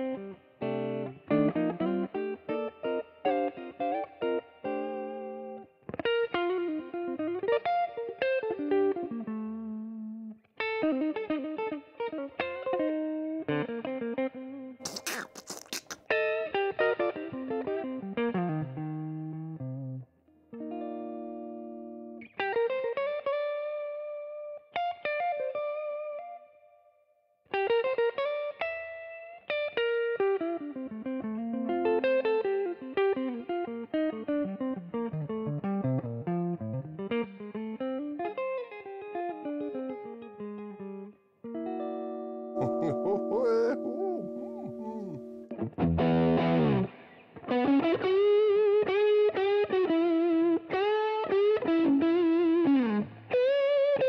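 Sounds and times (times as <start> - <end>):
electric guitar playing: 0.0 - 15.2, 15.8 - 26.4, 27.5 - 54.0.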